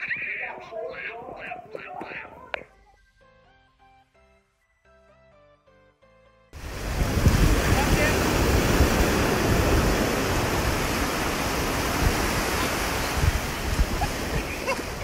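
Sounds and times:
ocean surf washing ashore: 6.6s - 15.0s
wind buffeting microphone: 6.6s - 15.0s.

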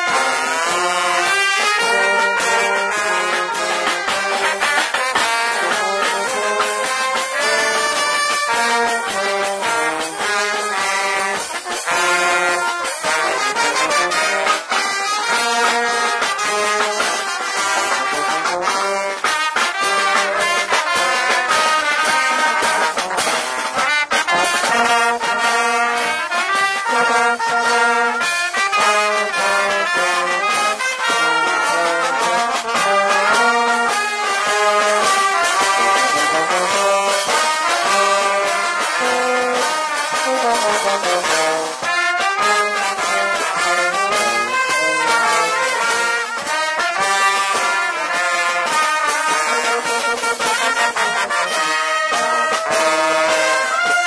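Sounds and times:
brass band playing: 0.0s - 54.0s
drum beat: 0.0s - 54.0s
horn playing close: 0.0s - 54.0s.

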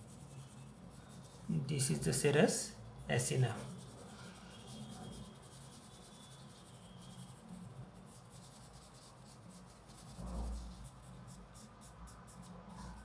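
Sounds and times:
pencil scratching on paper: 0.0s - 13.0s.

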